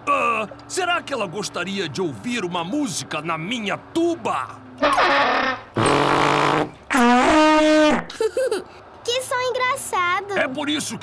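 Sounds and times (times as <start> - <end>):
raspy spluttering tuba: 4.8 - 8.1.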